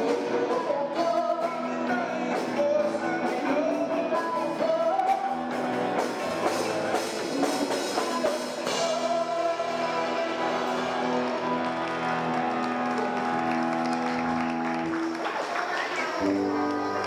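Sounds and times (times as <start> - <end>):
live band with electric guitars: 0.0 - 17.0.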